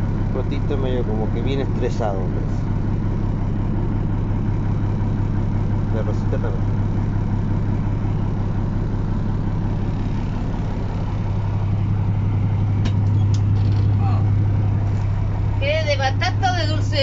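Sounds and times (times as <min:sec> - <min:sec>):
diesel engine idling: 0:00.0 - 0:17.0.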